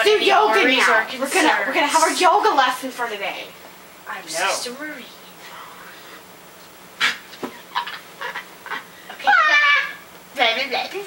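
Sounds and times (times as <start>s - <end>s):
person squealing: 9.2s - 10.0s.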